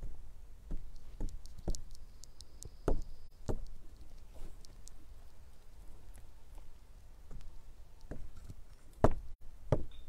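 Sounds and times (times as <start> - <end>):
faint sharp clicks: 0.9 - 5.0.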